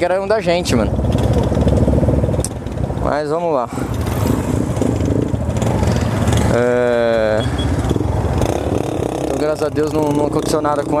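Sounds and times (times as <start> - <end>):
motorcycle engine idling: 0.1 - 11.0.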